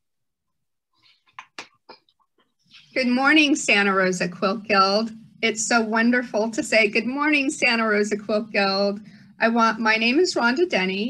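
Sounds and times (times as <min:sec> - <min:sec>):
woman speaking: 0:02.8 - 0:11.0.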